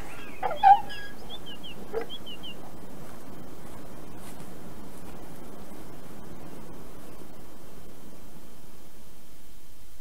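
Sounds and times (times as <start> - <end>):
animal call: 0.0 - 2.6
high bird chirps: 0.0 - 2.6
steady background hiss: 0.0 - 10.0.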